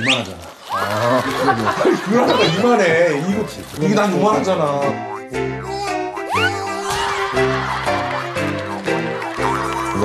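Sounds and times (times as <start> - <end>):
light playful background music: 1.8 - 10.0.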